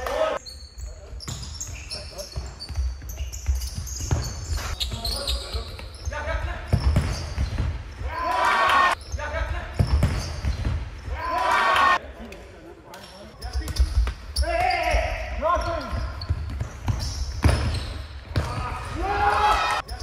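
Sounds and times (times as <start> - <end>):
ball kicked and bouncing: 2.4 - 5.1, 6.7 - 7.8, 15.6 - 18.8
players shouting: 8.0 - 9.4, 11.0 - 12.0, 18.4 - 19.8.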